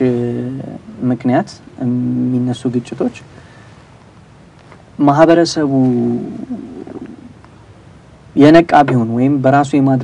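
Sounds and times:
man's hesitation hum: 6.0 - 7.4.

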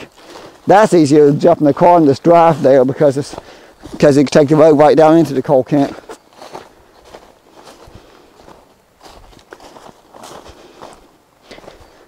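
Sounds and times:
footsteps crunching through leaves: 0.0 - 12.0.

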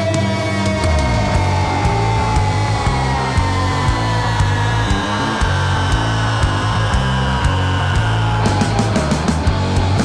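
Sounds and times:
heavy rock band playing: 0.0 - 10.0
high note sliding downward: 0.1 - 9.1.

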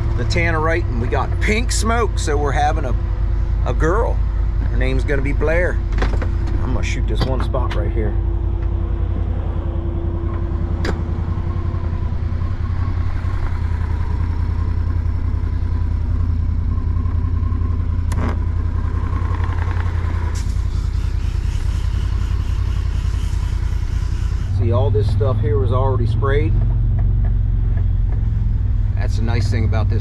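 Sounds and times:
utility vehicle engine droning: 0.0 - 30.0.

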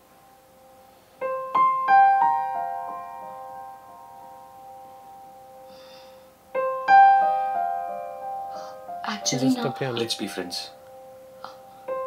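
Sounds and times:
soft solo piano: 1.2 - 5.7, 6.5 - 12.0.

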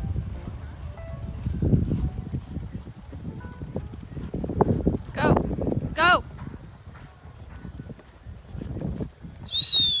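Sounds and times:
horse hooves thudding on turf: 0.1 - 9.4
loud high wavering whistle: 9.5 - 10.0.

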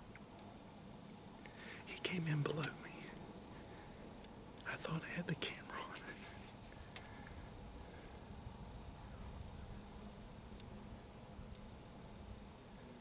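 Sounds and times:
man whispering: 1.8 - 3.2, 4.6 - 6.4.

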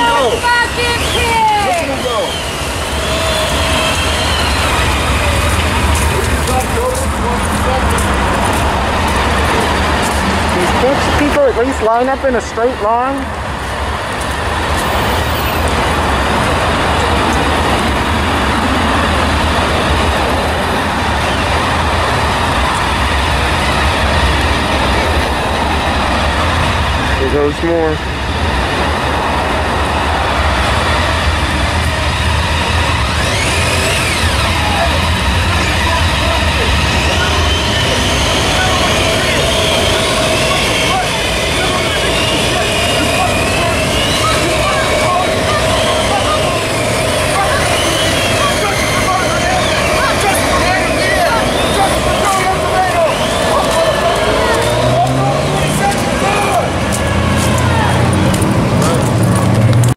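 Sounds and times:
vehicle engine accelerating: 0.0 - 59.9
motorcycle and car engines passing: 1.7 - 59.9.

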